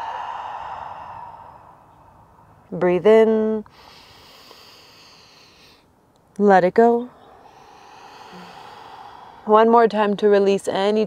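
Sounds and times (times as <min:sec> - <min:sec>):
woman exhaling: 0:00.0 - 0:02.3, 0:07.2 - 0:09.6.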